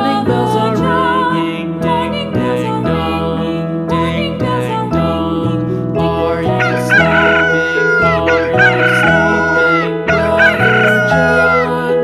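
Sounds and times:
rooster crowing: 0:06.6 - 0:11.9.

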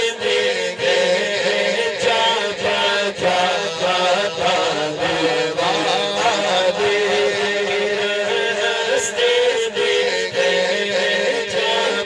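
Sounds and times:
man singing into a microphone: 0:00.0 - 0:12.0.

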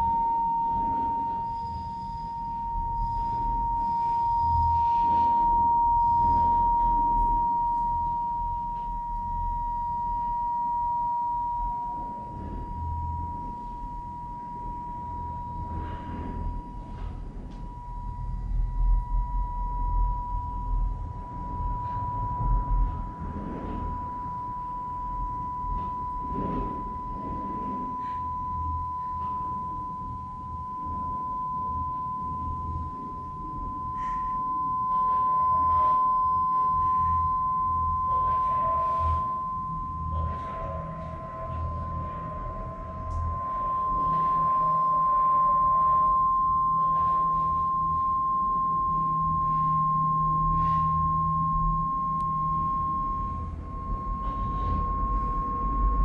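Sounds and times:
electronic sine tone: 0:00.0 - 0:56.0
low rumble: 0:00.0 - 0:56.0.

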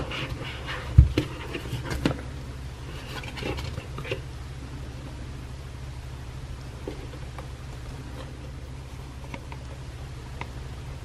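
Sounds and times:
cardboard scraping and rustling: 0:00.0 - 0:02.2, 0:02.8 - 0:04.2.

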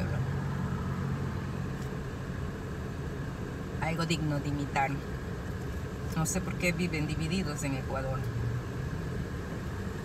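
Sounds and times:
car engine idling hum: 0:00.0 - 0:10.0.

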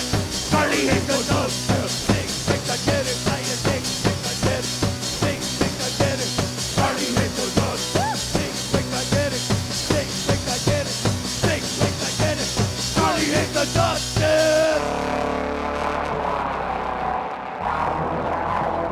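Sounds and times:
drum kit beat: 0:00.0 - 0:14.8
live band instrumental: 0:00.0 - 0:15.4.

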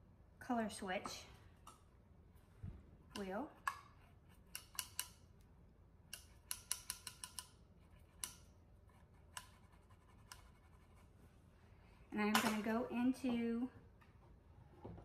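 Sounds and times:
brush scratching on sponge: 0:08.9 - 0:11.2.

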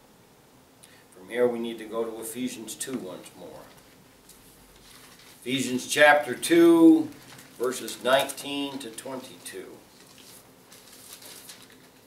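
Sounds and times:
pages turning: 0:03.7 - 0:05.6, 0:06.8 - 0:12.0.

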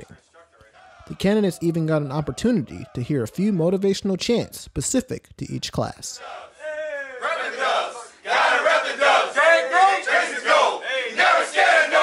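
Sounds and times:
group chanting in unison: 0:00.0 - 0:01.2, 0:06.2 - 0:12.0.

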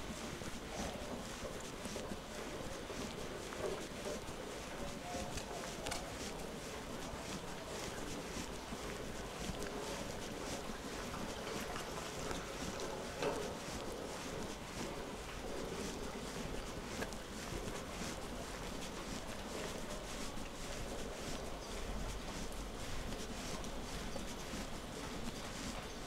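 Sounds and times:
footsteps on wet pavement: 0:00.0 - 0:26.0.

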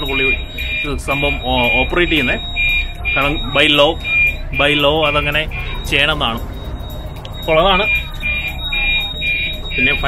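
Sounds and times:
fire alarm beeping: 0:00.0 - 0:10.0.

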